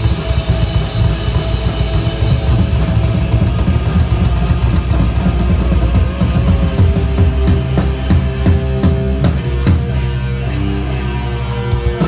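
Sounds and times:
cymbal crashes: 0:00.0 - 0:05.3
hard rock band playing: 0:00.0 - 0:12.0.

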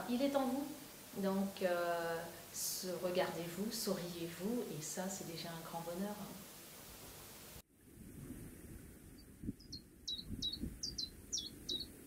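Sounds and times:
small bird chirping: 0:09.5 - 0:12.0.

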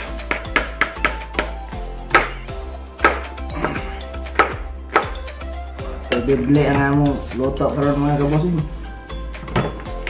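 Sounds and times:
knife chopping on cutting board: 0:03.0 - 0:03.8, 0:04.4 - 0:05.2.

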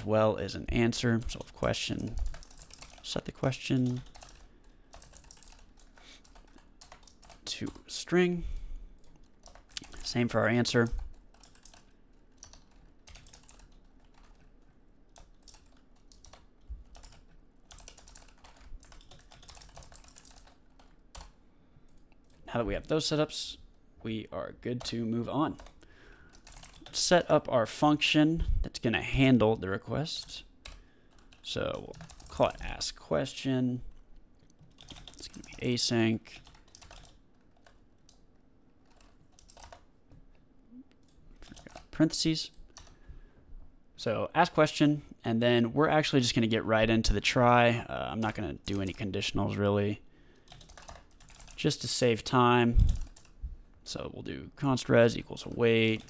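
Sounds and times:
computer keyboard typing: 0:01.0 - 0:07.9, 0:09.0 - 0:22.4, 0:24.8 - 0:27.0, 0:30.2 - 0:32.7, 0:34.5 - 0:38.2, 0:38.8 - 0:39.9, 0:41.0 - 0:42.0, 0:42.6 - 0:43.0, 0:50.4 - 0:51.7, 0:52.8 - 0:53.4.

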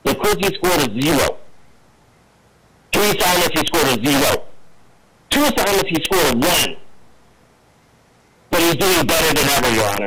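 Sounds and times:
distorted unintelligible voice: 0:00.0 - 0:01.5, 0:03.0 - 0:04.5, 0:05.3 - 0:06.9, 0:08.5 - 0:10.0.

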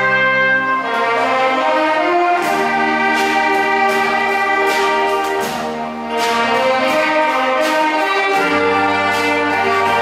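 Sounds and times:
brass ensemble playing chords: 0:00.0 - 0:10.0.

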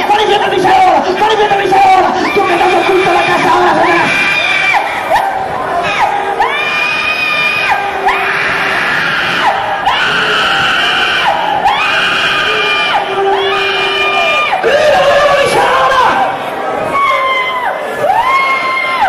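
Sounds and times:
crowd shouting: 0:00.0 - 0:19.0
high-pitched screams: 0:01.9 - 0:19.0.

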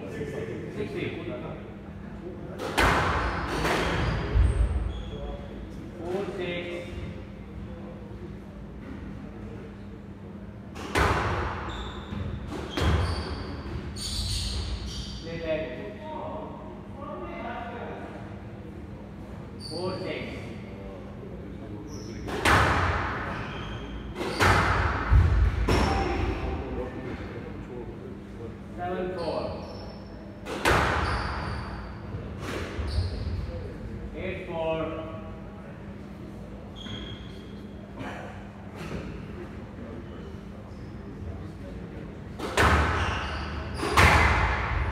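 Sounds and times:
men talking: 0:00.0 - 0:02.8, 0:03.8 - 0:10.4, 0:25.7 - 0:29.6, 0:32.9 - 0:36.4
squash ball hitting court wall: 0:22.3 - 0:23.2, 0:42.4 - 0:43.0, 0:43.8 - 0:44.9
shoes squeaking on wooden floor: 0:43.0 - 0:44.0
squash ball struck hard: 0:43.8 - 0:44.9.

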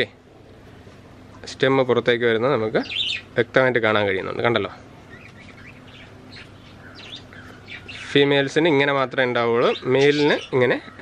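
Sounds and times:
low background noise: 0:00.0 - 0:11.0
small birds chirping: 0:00.0 - 0:11.0.

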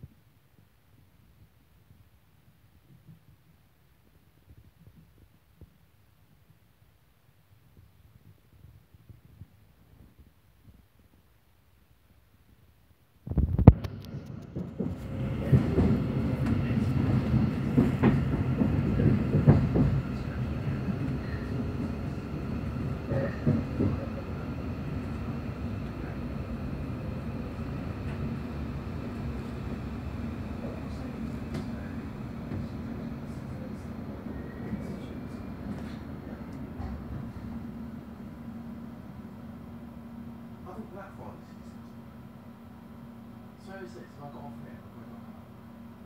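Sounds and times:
train wheels rumbling on rails: 0:13.7 - 0:39.4.

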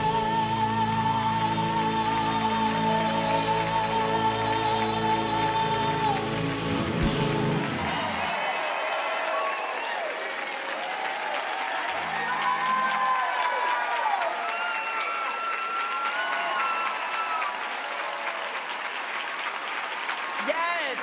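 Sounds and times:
audience applauding: 0:00.9 - 0:21.0.

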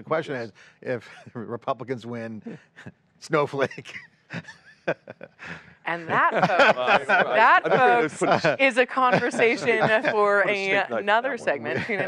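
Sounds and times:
people laughing: 0:03.6 - 0:12.0
person speaking: 0:05.5 - 0:12.0.

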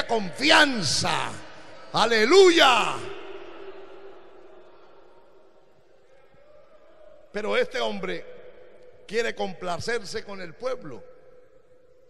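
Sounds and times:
voice echoing in a hall: 0:00.0 - 0:12.0.

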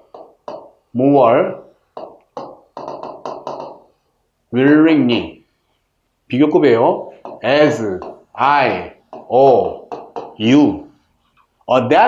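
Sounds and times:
stylus tapping and scraping on screen: 0:00.0 - 0:00.9, 0:01.6 - 0:04.0, 0:07.1 - 0:08.4, 0:09.0 - 0:11.7.

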